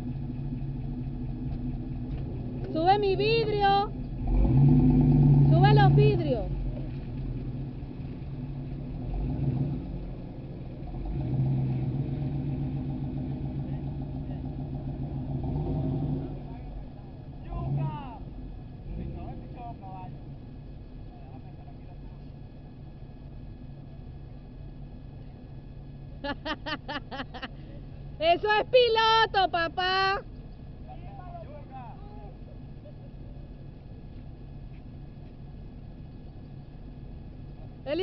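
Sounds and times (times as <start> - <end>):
off-road vehicle engine revving: 0.0 - 26.3
voices calling out: 2.4 - 4.0, 5.4 - 8.9, 16.0 - 35.0.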